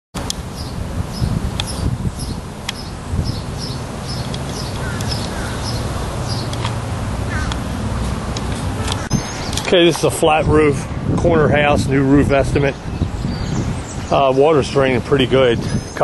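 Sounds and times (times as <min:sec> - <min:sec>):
steady low rumble: 0:00.3 - 0:14.2
small bird chirping: 0:00.6 - 0:06.6, 0:12.9 - 0:14.2.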